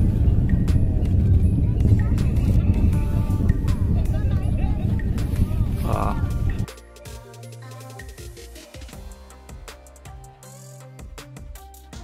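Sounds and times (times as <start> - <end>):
faint music: 0.0 - 8.2
faint voices: 1.8 - 6.7.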